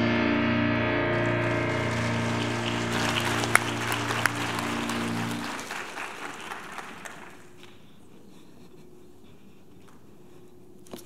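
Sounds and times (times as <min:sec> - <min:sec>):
piano chord ringing: 0:00.0 - 0:05.7
audience applause: 0:01.1 - 0:07.7.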